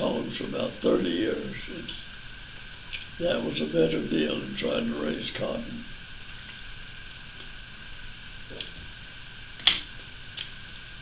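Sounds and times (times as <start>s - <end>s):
background hiss: 0.0s - 11.0s
sharp click: 9.6s - 10.5s.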